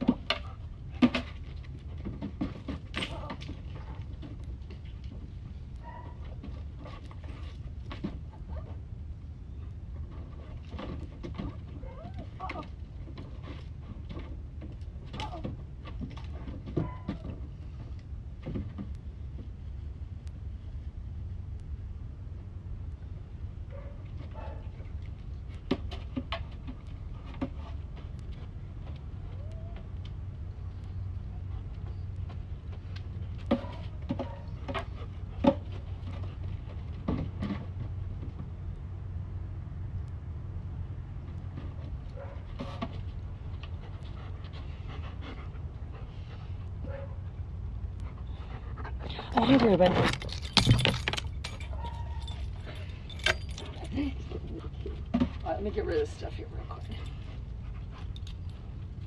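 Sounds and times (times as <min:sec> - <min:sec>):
steady low rumble: 0:17.5 - 0:25.7
dog panting: 0:43.7 - 0:49.5, 0:55.7 - 0:59.0.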